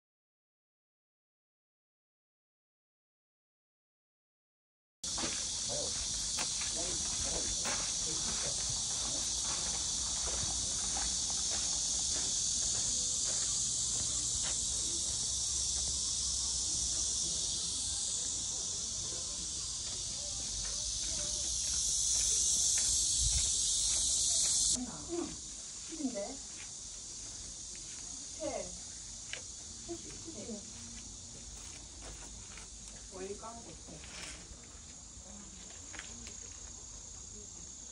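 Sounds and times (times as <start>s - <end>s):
cicadas buzzing: 5.0s - 37.9s.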